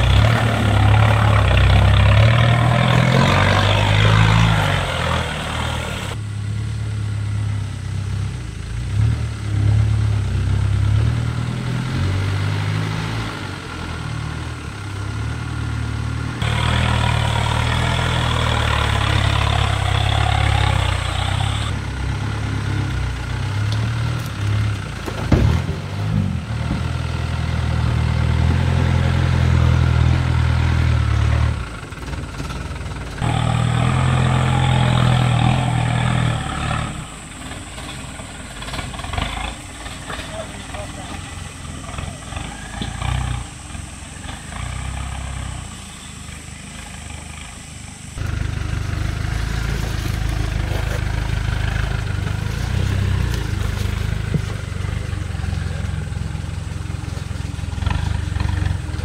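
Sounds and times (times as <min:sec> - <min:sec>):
truck engine at low revs: 0:00.0 - 0:59.0.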